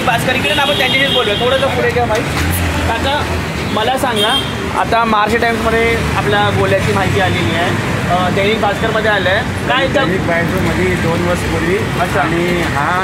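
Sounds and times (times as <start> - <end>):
man talking: 0.0 - 13.0
street traffic: 0.0 - 13.0.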